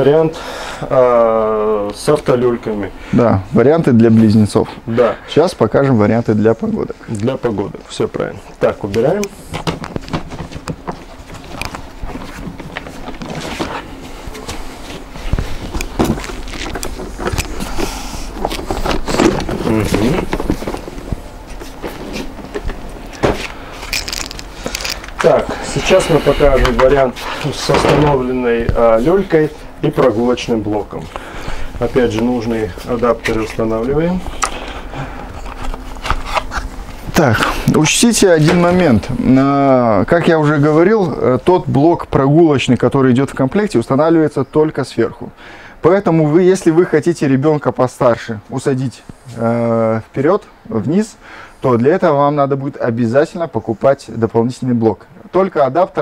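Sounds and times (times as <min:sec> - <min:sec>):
footsteps: 0:07.4 - 0:37.7.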